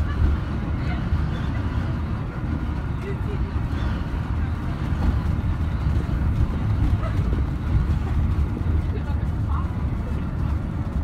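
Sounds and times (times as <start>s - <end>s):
coach engine and road noise: 0.0s - 11.0s.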